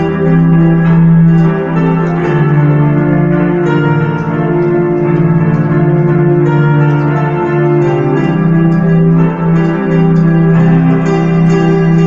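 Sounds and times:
electronic keyboard chords: 0.0s - 12.0s.

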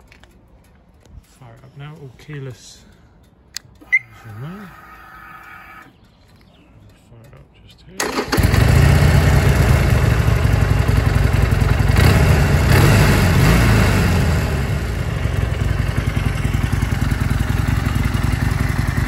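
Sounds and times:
motorcycle engine idling: 8.0s - 19.0s.

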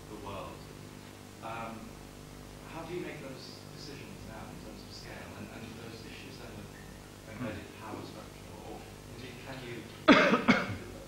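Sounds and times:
person coughing: 10.1s - 10.9s.

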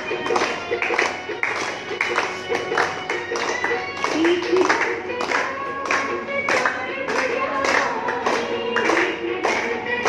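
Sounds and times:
group clapping in time: 0.0s - 10.0s.

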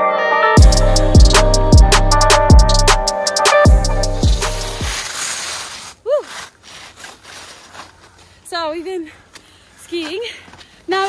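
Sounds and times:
hip-hop bass drum hits: 0.6s - 5.0s.

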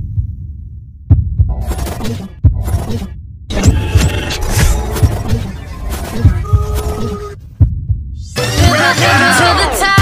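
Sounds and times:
low thumps: 0.0s - 1.6s, 7.4s - 8.2s.

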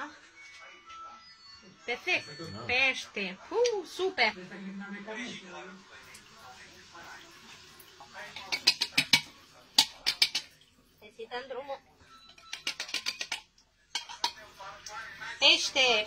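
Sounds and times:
metal tin clinking on strainer: 8.3s - 10.6s, 12.3s - 14.5s.

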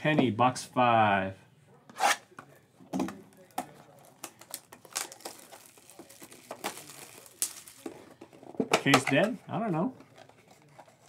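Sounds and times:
plastic wrapping crackling: 3.3s - 8.2s.

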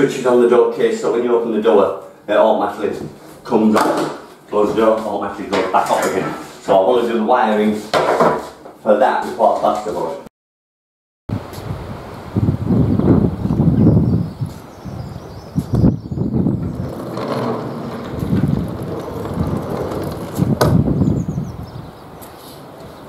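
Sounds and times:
sharp knocks: 7.9s - 8.5s
wind on microphone: 11.3s - 23.0s
sliding door rolling along track: 16.2s - 21.3s.

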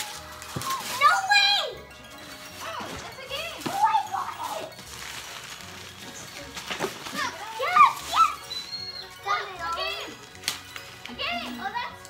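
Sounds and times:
children calling out excitedly: 0.0s - 1.8s, 2.6s - 4.8s, 6.3s - 10.3s
music playing: 0.0s - 12.0s.

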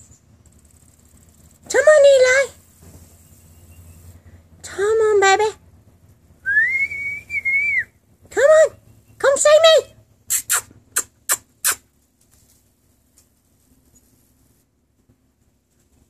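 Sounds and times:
person whistling: 6.4s - 7.9s
short high calls: 6.4s - 8.0s, 10.3s - 12.0s.

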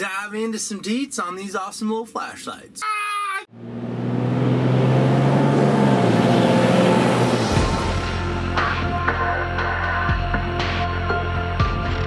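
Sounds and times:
person shouting: 2.8s - 3.5s.

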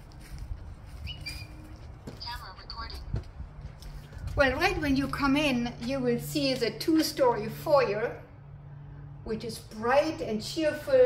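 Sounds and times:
small bird chirping: 1.0s - 1.7s.

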